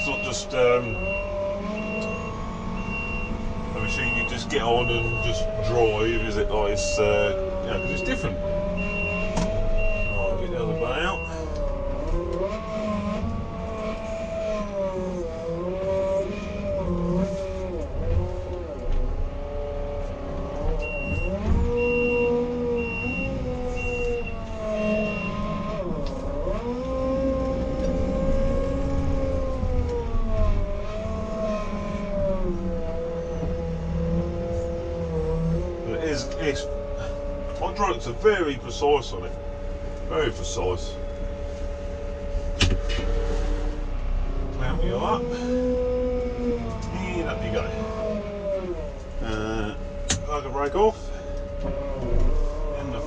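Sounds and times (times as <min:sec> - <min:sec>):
diesel engine running: 0:00.0 - 0:53.0
high beeper: 0:07.7 - 0:11.4.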